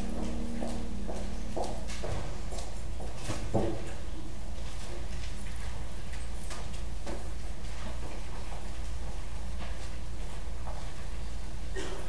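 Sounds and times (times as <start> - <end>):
held organ chord: 0.0 - 3.2
footsteps on hard floor: 0.0 - 4.0.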